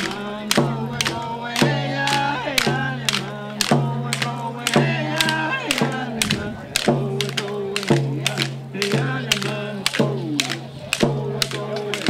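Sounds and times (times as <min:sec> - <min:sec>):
group singing: 0:00.0 - 0:12.0
sharp clacking beat: 0:00.0 - 0:12.0.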